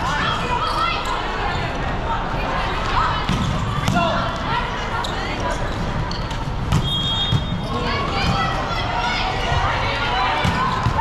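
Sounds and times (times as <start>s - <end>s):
general noise of play: 0.0s - 11.0s.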